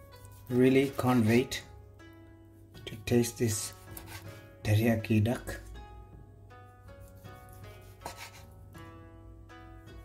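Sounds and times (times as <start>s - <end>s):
slow background music: 0.0s - 10.0s
knife slicing onto cutting board: 7.1s - 8.5s.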